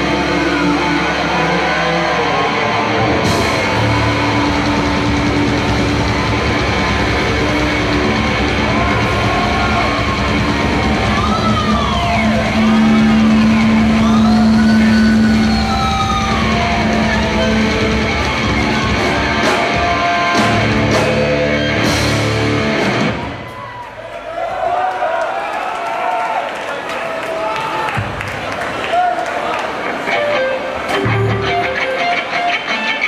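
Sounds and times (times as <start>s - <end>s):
heavy metal band playing live: 0.0s - 23.6s, 30.2s - 33.0s.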